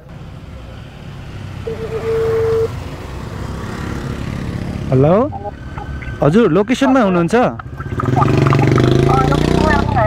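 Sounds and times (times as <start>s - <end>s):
phone ringing tone: 1.7s - 2.7s, 5.3s - 8.9s
motorcycle engine running: 2.4s - 10.0s.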